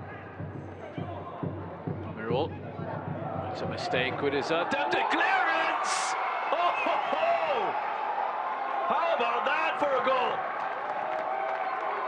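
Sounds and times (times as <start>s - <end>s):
crowd noise: 0.0s - 12.0s
people shouting and cheering: 0.0s - 12.0s.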